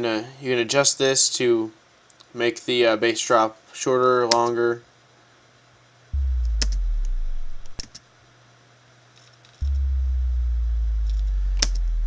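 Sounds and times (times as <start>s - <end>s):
synthesized bass drop: 6.2s - 7.8s, 9.6s - 12.0s.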